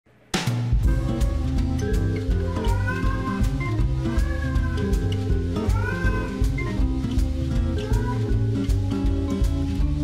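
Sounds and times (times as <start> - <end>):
background music with beat: 0.3 - 10.0
cat meowing: 4.1 - 4.9, 5.6 - 6.4.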